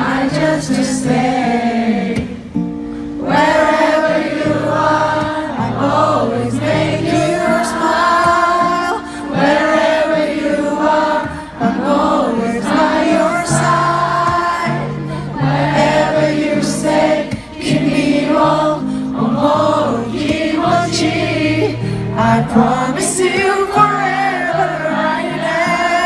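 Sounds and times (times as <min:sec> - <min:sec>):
crowd singing together: 0:00.0 - 0:26.0
male singer amplified voice: 0:18.7 - 0:26.0.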